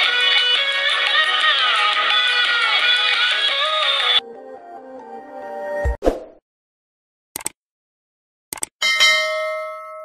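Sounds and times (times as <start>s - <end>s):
notification bell ding: 8.8s - 10.0s.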